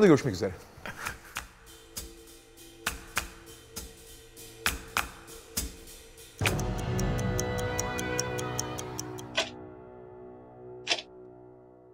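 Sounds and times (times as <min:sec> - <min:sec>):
sustained music: 0:01.6 - 0:11.9
clock-like ticking: 0:06.4 - 0:09.5.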